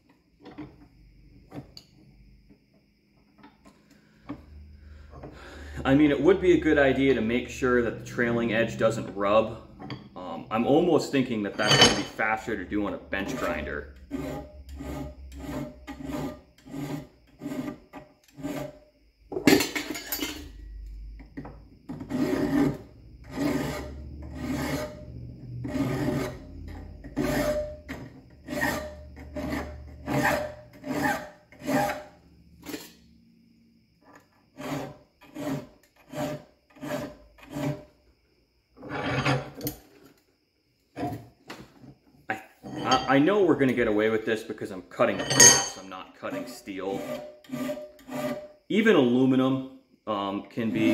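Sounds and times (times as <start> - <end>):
hand file rasping on metal: 13.2 - 18.8, 21.9 - 32.1, 34.6 - 37.9, 46.2 - 48.5.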